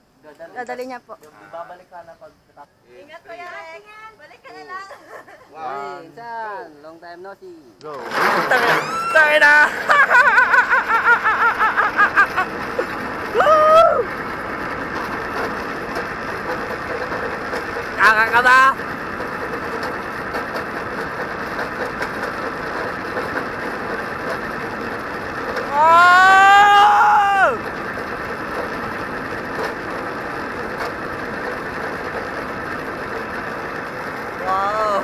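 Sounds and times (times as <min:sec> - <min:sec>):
rushing noise of zipline ride: 0:08.0 - 0:35.0
man laughing and whooping: 0:08.5 - 0:14.1, 0:25.7 - 0:27.6
man yelling: 0:25.7 - 0:27.6, 0:34.4 - 0:35.0.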